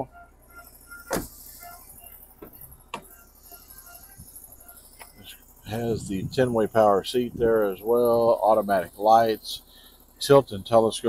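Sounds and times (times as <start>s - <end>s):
car door thump: 1.0s - 1.6s, 2.4s - 3.1s
car door latch click: 1.1s - 1.4s.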